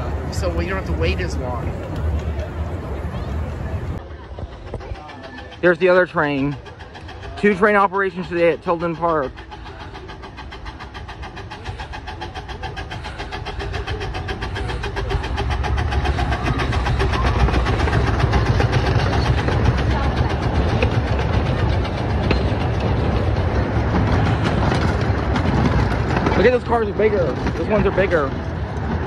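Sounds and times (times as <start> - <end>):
miniature steam train passing: 0.0 - 29.0.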